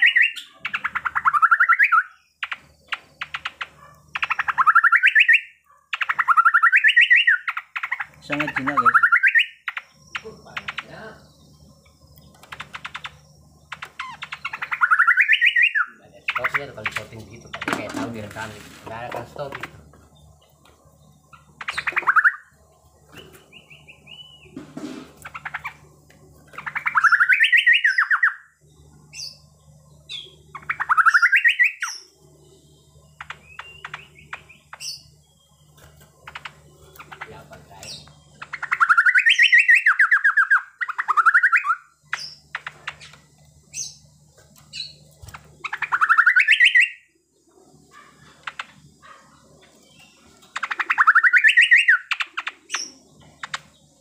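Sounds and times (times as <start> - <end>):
bird singing rattling phrases: 0.0 - 54.0
thin bird calls: 0.0 - 54.0.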